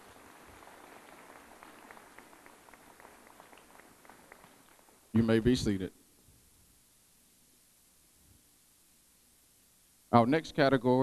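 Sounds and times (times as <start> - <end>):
faint audience applause: 0.0 - 5.6.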